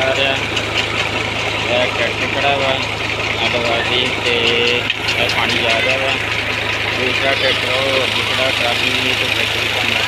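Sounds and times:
tractor diesel engine running: 0:00.0 - 0:10.0
water gushing into a tank: 0:00.0 - 0:10.0.

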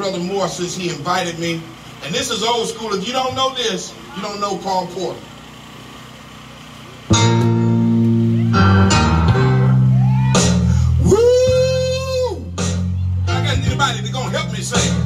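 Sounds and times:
guitar and bass chords: 0:06.8 - 0:15.0
gospel band playing: 0:07.1 - 0:15.0.

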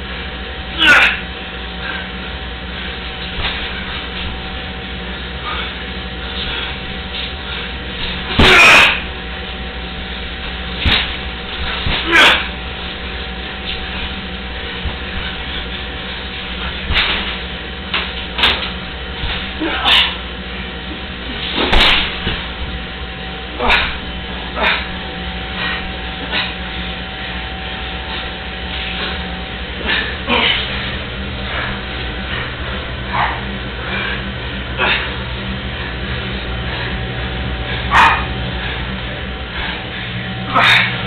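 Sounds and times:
steady low hum: 0:00.0 - 0:41.0
bodies thumping on tiled floor: 0:03.1 - 0:04.6, 0:06.3 - 0:09.2, 0:10.1 - 0:20.3, 0:21.1 - 0:22.9, 0:23.6 - 0:34.2
scuffling: 0:03.1 - 0:04.6, 0:05.2 - 0:41.0.

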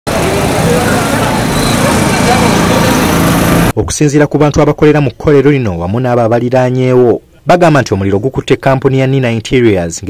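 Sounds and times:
road traffic: 0:00.0 - 0:03.8
crowd voices: 0:00.1 - 0:03.7.

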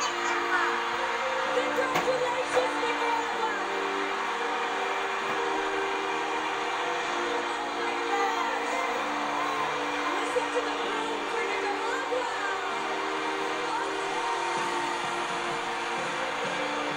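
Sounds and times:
crowd cheering and whooping: 0:00.0 - 0:16.9
music with long held notes: 0:00.0 - 0:16.9.

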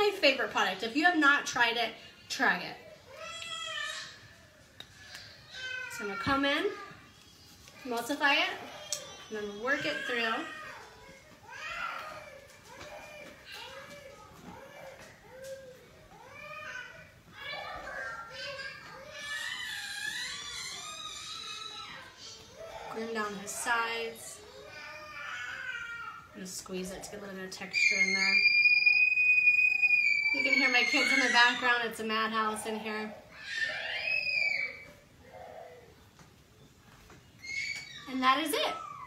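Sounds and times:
children's voices playing: 0:07.9 - 0:26.3, 0:27.7 - 0:31.8
child's long wavering cry: 0:09.8 - 0:23.0, 0:27.7 - 0:31.7, 0:33.3 - 0:36.0.

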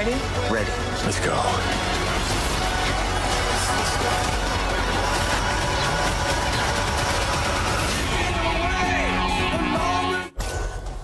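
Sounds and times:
trailer music: 0:00.0 - 0:11.0.

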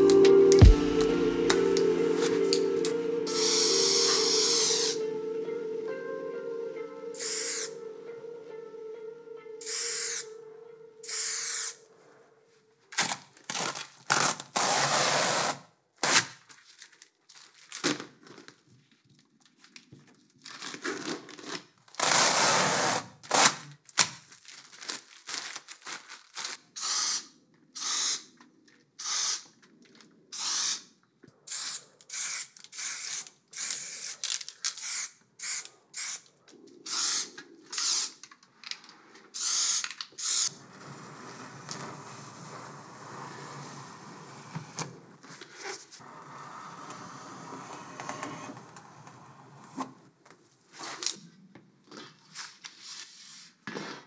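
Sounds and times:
spray paint can hissing: 0:09.6 - 0:10.2, 0:11.0 - 0:11.8, 0:31.5 - 0:34.2, 0:34.8 - 0:36.2, 0:36.9 - 0:38.2, 0:39.4 - 0:40.5.

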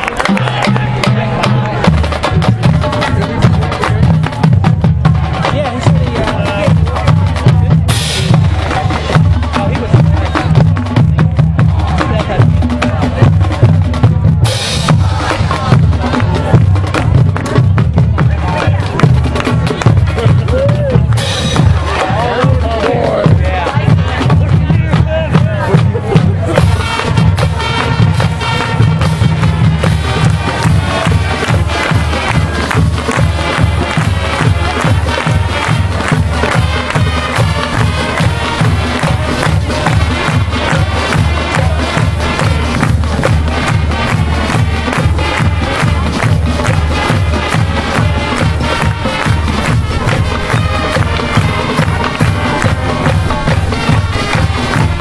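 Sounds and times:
drums keeping steady beat: 0:00.0 - 0:55.0
marching band playing: 0:00.0 - 0:55.0.

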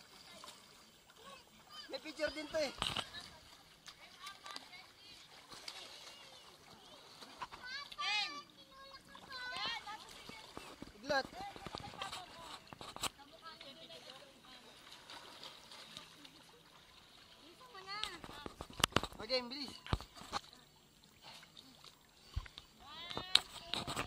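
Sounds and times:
pool water splashing: 0:00.0 - 0:24.0.

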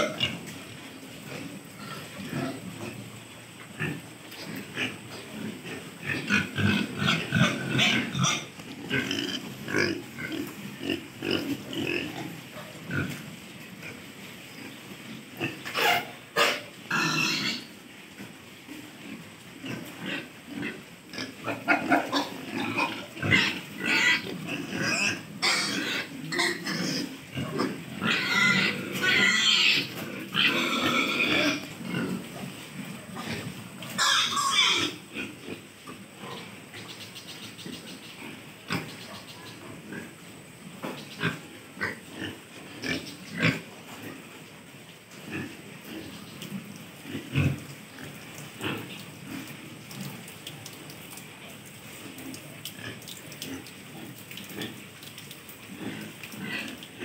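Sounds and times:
pigs grunting: 0:00.0 - 0:14.0, 0:15.3 - 0:17.7, 0:18.7 - 0:36.9, 0:40.8 - 0:44.3, 0:45.2 - 0:50.1
high-pitched pig calls: 0:03.8 - 0:13.2, 0:15.4 - 0:17.7, 0:19.7 - 0:32.2, 0:33.1 - 0:35.6.

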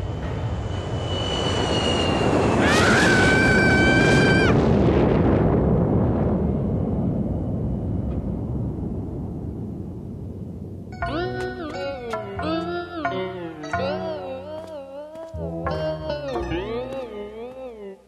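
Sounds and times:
high held tone: 0:11.0 - 0:18.0.

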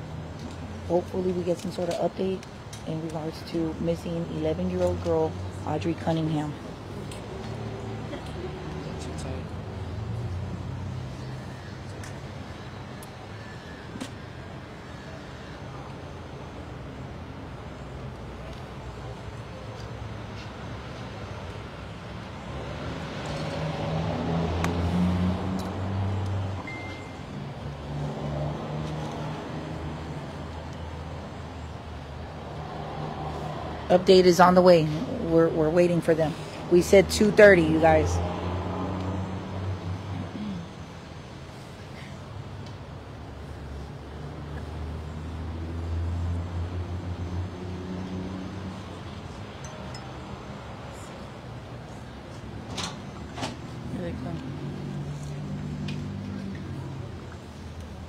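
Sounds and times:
traffic noise: 0:00.0 - 0:58.0
vehicle engine hum: 0:00.0 - 0:58.0.

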